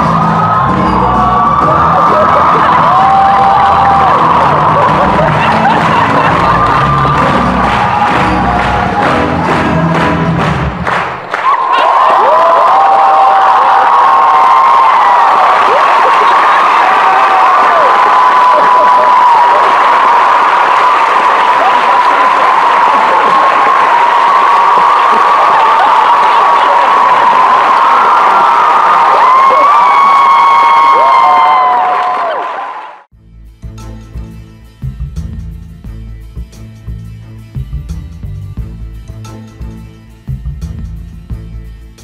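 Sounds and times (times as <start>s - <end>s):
crowd cheering and applauding: 0.0s - 33.1s.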